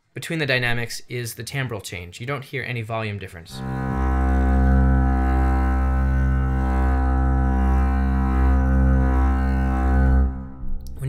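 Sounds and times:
bowed double bass note: 0:03.5 - 0:11.0.

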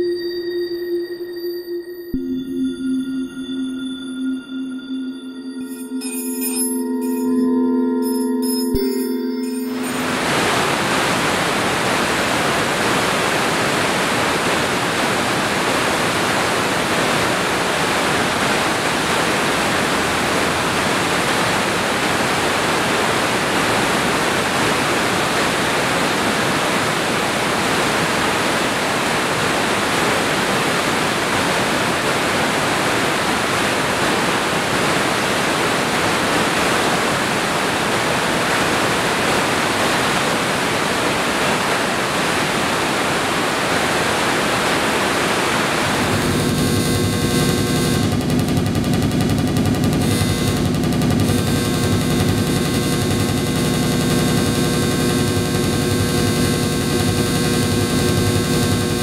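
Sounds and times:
water rushing over dam spillway: 0:09.9 - 0:46.2.

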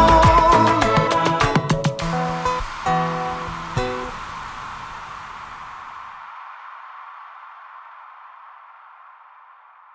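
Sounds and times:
song music: 0:00.0 - 0:04.3
hiss-like wash: 0:00.5 - 0:09.9.

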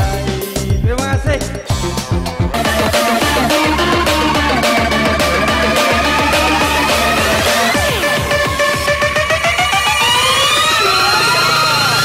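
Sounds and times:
dance drum beat: 0:00.0 - 0:10.7
held low synth note: 0:02.5 - 0:10.6
rising synth sweep: 0:02.5 - 0:12.0.

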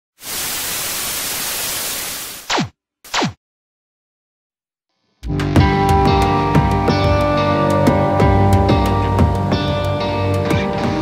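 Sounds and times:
television static hiss: 0:00.2 - 0:02.4.

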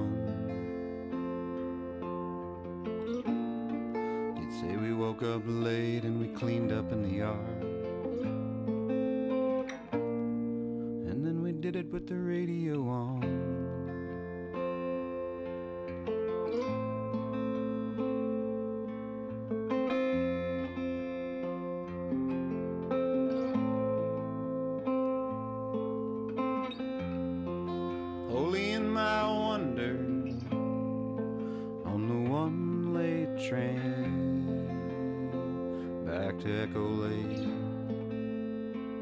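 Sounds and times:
person singing: 0:00.0 - 0:08.5, 0:10.9 - 0:15.8, 0:27.5 - 0:39.0
fingerstyle guitar: 0:00.0 - 0:39.0.

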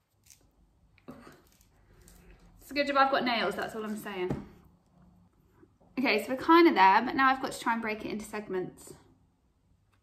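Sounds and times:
lemon peel tearing: 0:00.0 - 0:02.4.

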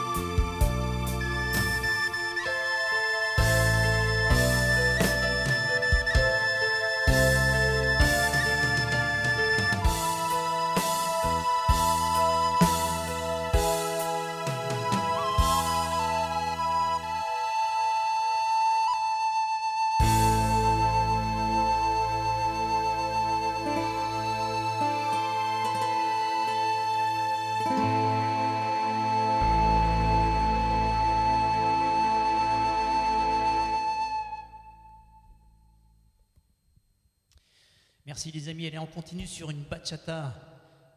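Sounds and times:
low musical accompaniment: 0:00.0 - 0:35.5
recorder playing slow melody: 0:00.0 - 0:35.6
soft sustained backing chords: 0:20.0 - 0:35.9.

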